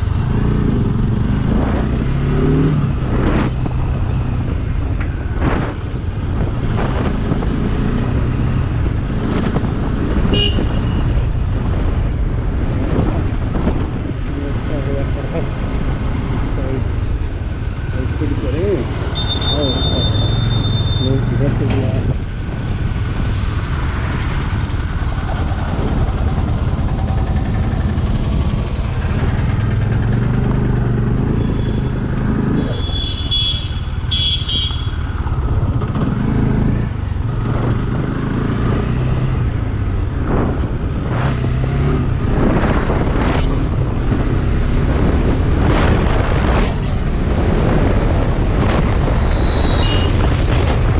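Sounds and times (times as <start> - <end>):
motorcycle engine running: 0.0 - 50.9.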